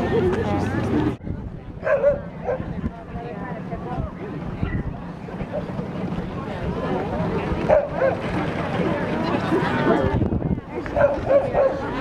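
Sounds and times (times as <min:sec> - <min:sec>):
chatter of people: 0:00.0 - 0:12.0.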